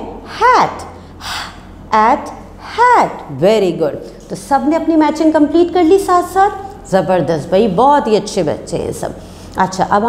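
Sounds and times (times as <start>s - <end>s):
woman's sharp breath: 1.0s - 1.7s.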